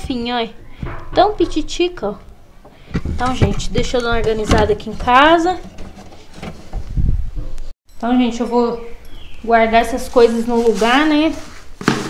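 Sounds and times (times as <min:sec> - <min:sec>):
wire-mesh door scraping shut: 0:02.8 - 0:06.9.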